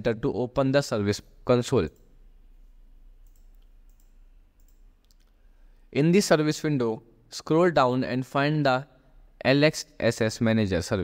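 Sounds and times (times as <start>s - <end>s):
computer mouse clicks: 3.2s - 5.4s.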